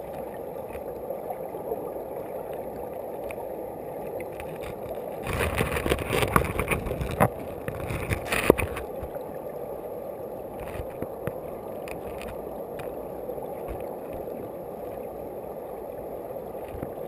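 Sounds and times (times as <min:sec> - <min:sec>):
muffled underwater river rush: 0:00.0 - 0:17.0.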